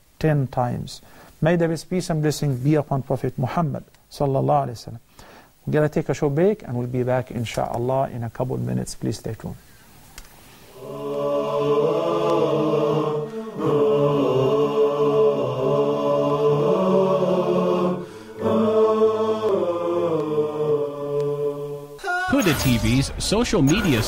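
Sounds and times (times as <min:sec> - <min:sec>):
chanted vocal music: 0:10.7 - 0:24.0.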